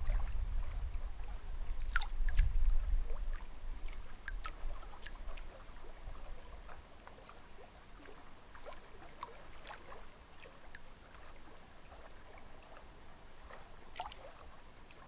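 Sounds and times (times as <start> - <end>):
waves lapping against rocks: 0.0 - 15.0
small splashes and plinks: 1.8 - 12.9, 13.5 - 15.0.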